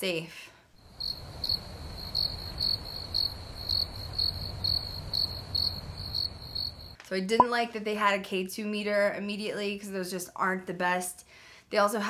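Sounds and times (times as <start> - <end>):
crickets chirping: 0.8 - 7.0.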